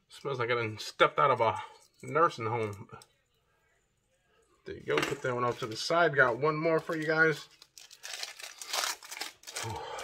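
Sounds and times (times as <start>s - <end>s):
packaging crinkling and rustling: 5.5s - 10.0s.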